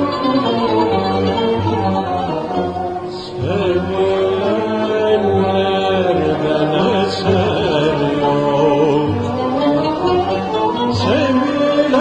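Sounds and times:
person singing ornamented lines: 0.0 - 12.0
sustained instrumental accompaniment: 0.0 - 12.0.

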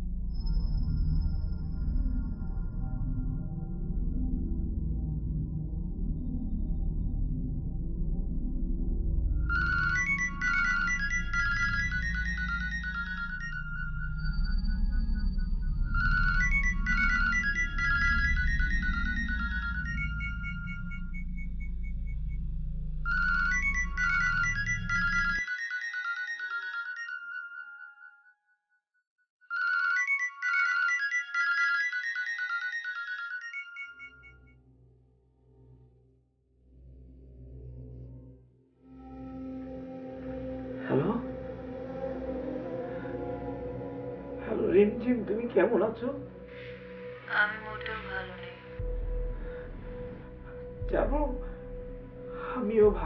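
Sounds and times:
low droning background music: 0.0 - 25.4, 34.5 - 53.0
phone ringtone melody: 9.7 - 14.1, 16.0 - 21.2, 23.2 - 28.4, 29.5 - 34.5
low background music: 38.9 - 53.0.

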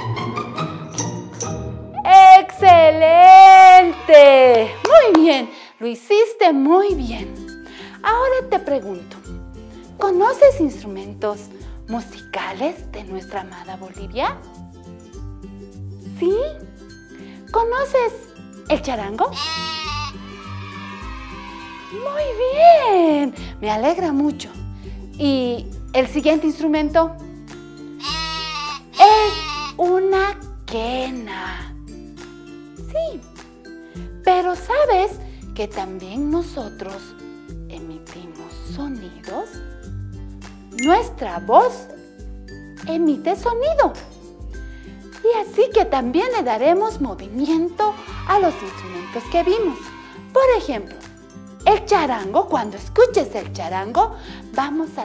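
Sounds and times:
soft background music: 0.0 - 55.0
person's drawn-out high exclamations: 19.4 - 22.4, 48.0 - 50.2.

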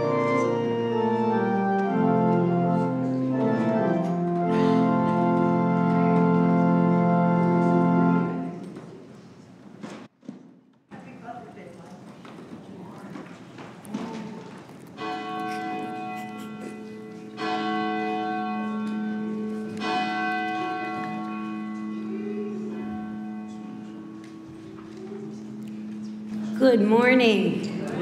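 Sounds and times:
church bell tolling: 0.0 - 8.7, 14.9 - 28.0.

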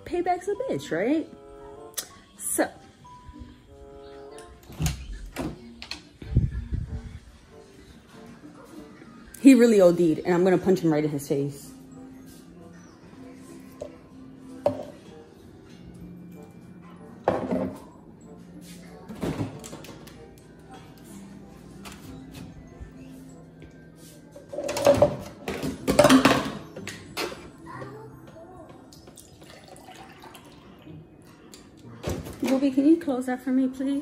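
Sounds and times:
soft background music: 0.0 - 34.0
kitchen knocks and clatters: 14.6 - 15.0, 17.2 - 17.9, 19.1 - 20.2, 24.4 - 27.5, 32.0 - 32.8.

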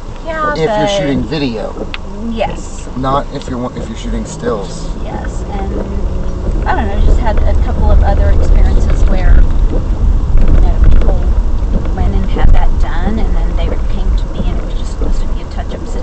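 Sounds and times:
car road and engine rumble: 0.0 - 16.0
people talking: 0.2 - 6.0, 6.7 - 9.5, 10.5 - 16.0.

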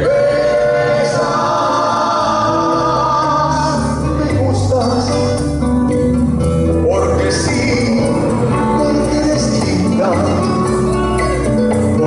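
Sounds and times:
voices singing together: 0.0 - 4.6
latin band music: 0.0 - 12.0.

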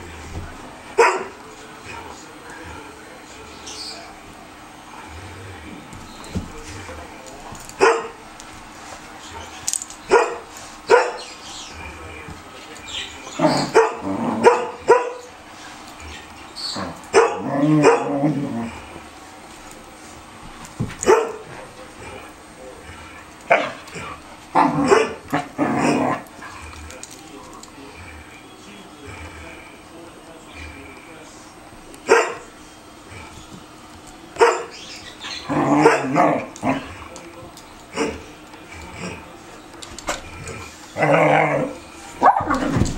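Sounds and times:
dogs play-fighting: 0.0 - 42.9
dogs barking: 0.9 - 2.4, 7.6 - 8.4, 9.3 - 11.8, 13.0 - 15.4, 16.1 - 18.8, 21.0 - 22.4, 23.0 - 26.7, 32.0 - 32.6, 34.3 - 37.0, 40.1 - 42.9
dog barking: 1.0 - 1.4, 7.8 - 8.2, 10.1 - 11.3, 13.6 - 15.3, 17.1 - 18.1, 21.0 - 21.4, 24.6 - 25.2, 32.1 - 32.4, 34.4 - 34.8, 42.2 - 42.6.

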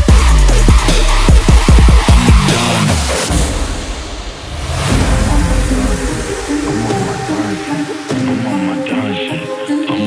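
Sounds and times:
hardstyle electronic music: 0.0 - 10.0.

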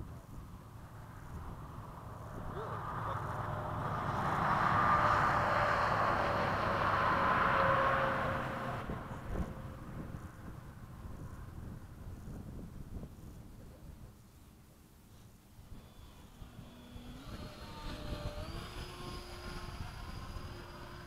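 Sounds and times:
model jet fan whine passing: 0.0 - 13.8, 15.1 - 21.0.

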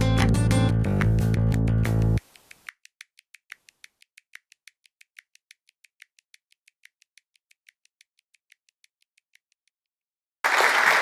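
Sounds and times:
music: 0.0 - 2.2
rapid even ticking: 1.0 - 9.9.

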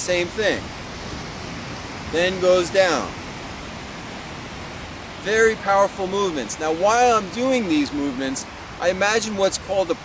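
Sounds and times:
ocean surf rushing: 0.0 - 10.0
wind: 0.0 - 10.0.

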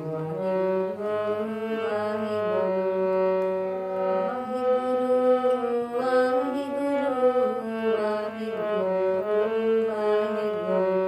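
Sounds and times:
woman chanting: 1.1 - 3.0, 4.2 - 11.0.

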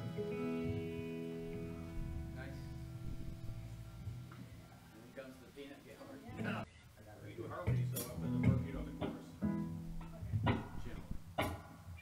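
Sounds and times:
plucked guitar notes: 0.0 - 4.4, 8.0 - 11.6
low bass guitar notes: 0.0 - 4.6
band playing softly: 0.0 - 5.6, 7.3 - 12.0.

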